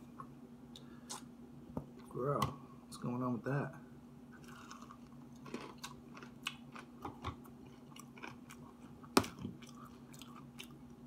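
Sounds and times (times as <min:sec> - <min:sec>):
chewing crunchy fried food: 0:04.4 - 0:11.0.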